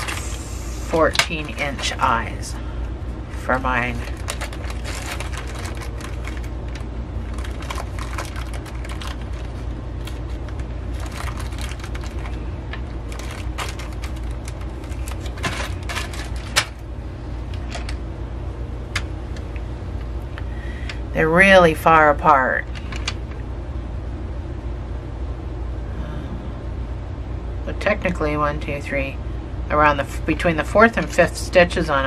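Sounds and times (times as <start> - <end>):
low hum: 0.0 - 32.0
plastic bag crinkling: 3.8 - 16.9.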